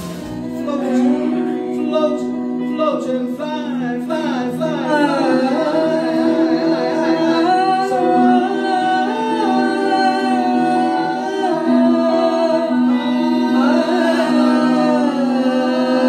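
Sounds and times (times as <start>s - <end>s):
lead voice singing ornamented melody: 0.0s - 16.0s.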